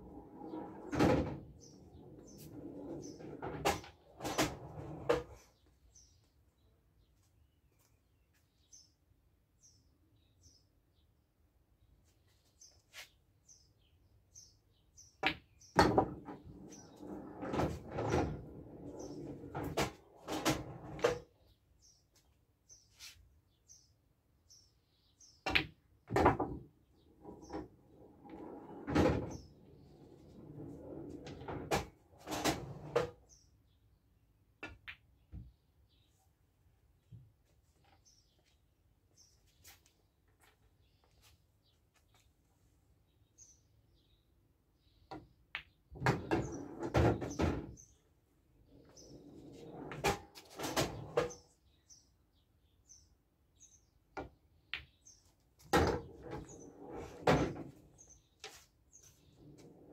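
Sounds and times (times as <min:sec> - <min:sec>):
pool ball rolling rumble: 0:00.0 - 0:05.4, 0:15.8 - 0:21.2, 0:26.1 - 0:33.1, 0:46.0 - 0:47.7, 0:48.8 - 0:51.3, 0:55.7 - 0:58.0, 0:59.3 - 0:59.9.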